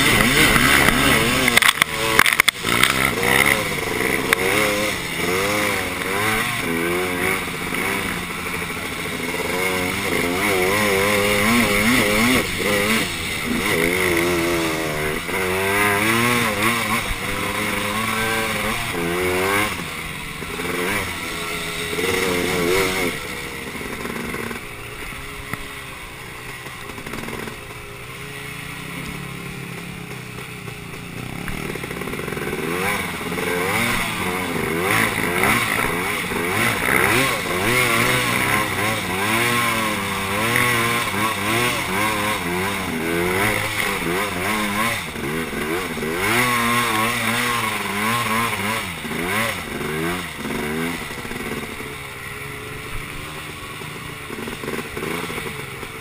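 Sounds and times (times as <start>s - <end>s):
quad engine revving: 0.0s - 56.0s.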